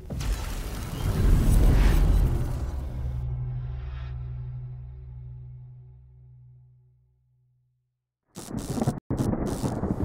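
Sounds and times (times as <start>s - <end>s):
rumbling thunder crash: 9.1s - 10.0s.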